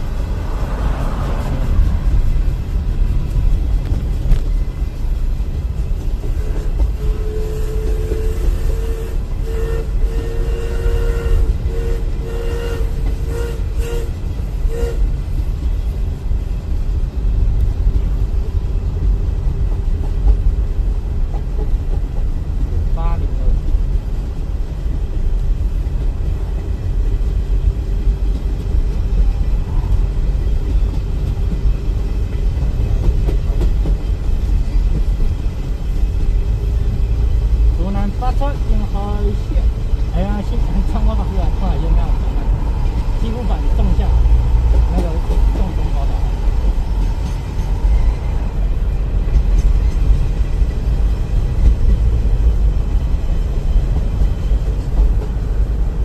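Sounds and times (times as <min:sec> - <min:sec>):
train running: 0:00.0 - 0:56.0.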